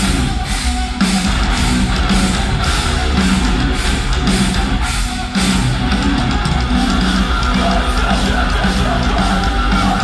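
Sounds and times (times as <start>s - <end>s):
live heavy rock band: 0.0s - 10.0s.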